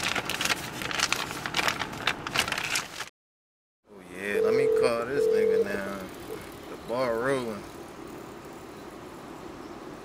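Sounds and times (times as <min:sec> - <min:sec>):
man humming: 0:04.4 - 0:05.8.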